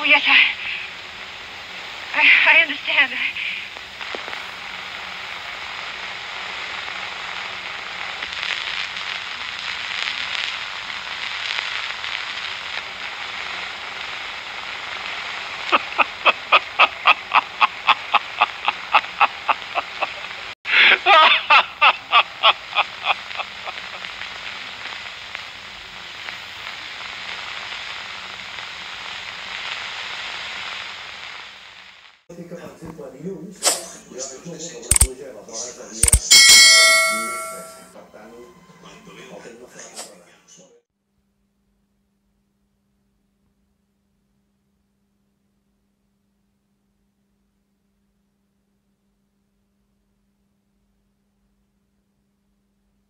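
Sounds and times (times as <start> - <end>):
film soundtrack hiss: 0.0 - 40.8
man laughing: 15.7 - 24.0.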